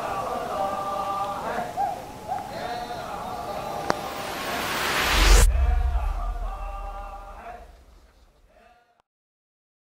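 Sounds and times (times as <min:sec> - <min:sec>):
faint soundtrack tail: 0:03.0 - 0:08.3.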